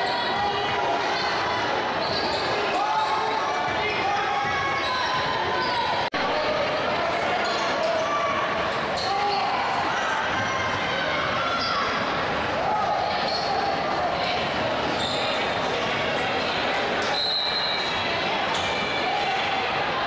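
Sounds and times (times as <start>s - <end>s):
voices echoing in a hall: 0.0s - 20.0s.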